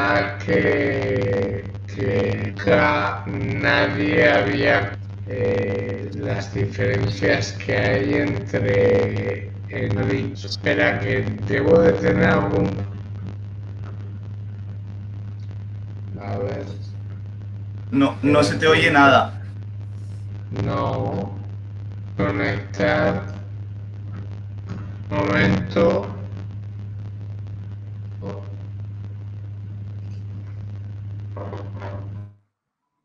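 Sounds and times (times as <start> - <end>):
faint muffled speech: 0.0 - 14.3, 16.1 - 16.9, 17.9 - 19.5, 20.5 - 21.4, 22.2 - 23.4, 24.7 - 26.3, 28.2 - 28.7
low electrical hum: 0.0 - 32.4.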